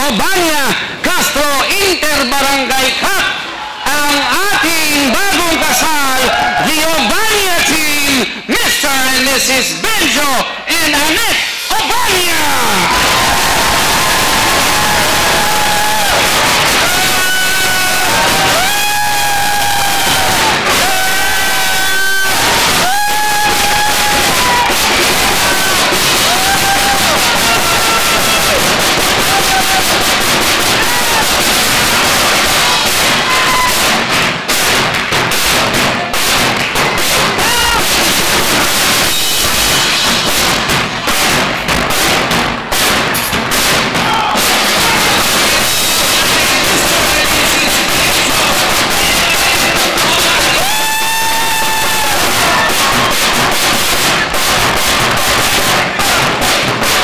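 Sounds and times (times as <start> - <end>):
crowd cheering and yelling: 0.0 - 8.2, 10.2 - 41.8, 42.6 - 57.0
drum group playing: 11.3 - 57.0
sharp drum hits: 22.3 - 57.0.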